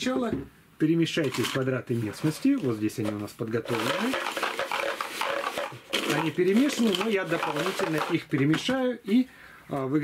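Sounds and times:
cardboard tiles clattering in a box: 0:03.7 - 0:08.8.

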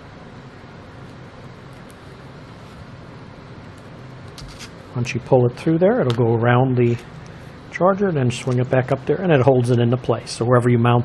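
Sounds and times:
low background hiss: 0:00.0 - 0:11.0
strap handling sounds: 0:03.8 - 0:04.8.

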